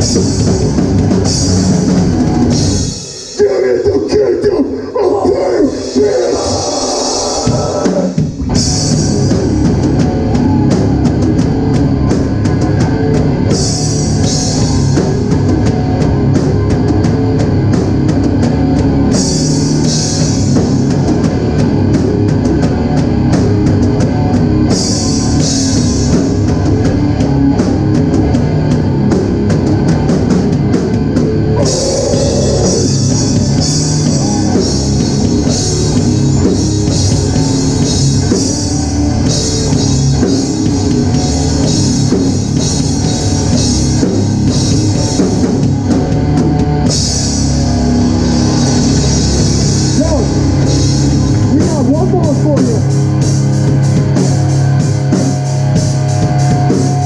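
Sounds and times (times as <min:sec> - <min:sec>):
hardcore band playing: 0:00.0 - 0:57.0.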